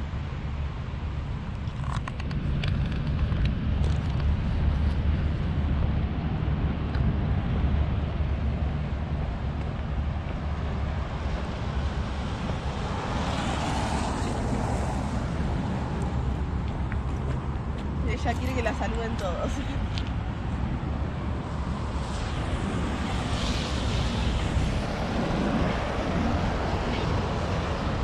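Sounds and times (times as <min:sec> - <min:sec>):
wind buffeting microphone: 0:00.0 - 0:28.0
car passing on wet road: 0:10.1 - 0:18.8, 0:19.5 - 0:28.0.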